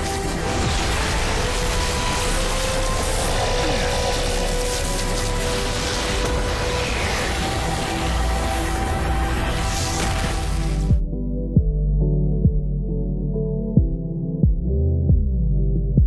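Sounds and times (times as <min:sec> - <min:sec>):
action sound effects: 0:00.0 - 0:11.0
dramatic orchestral score: 0:00.0 - 0:11.1.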